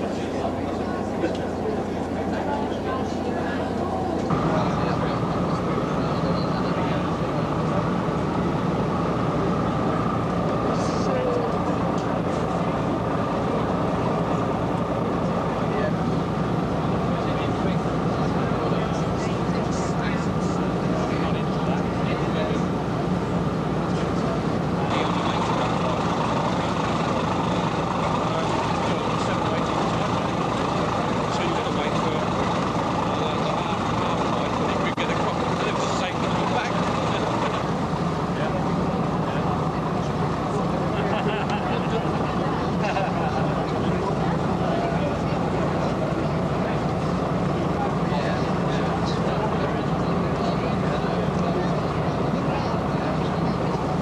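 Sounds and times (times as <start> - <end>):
ferry engine droning: 0.0 - 54.0
indistinct chatter of people: 0.0 - 54.0.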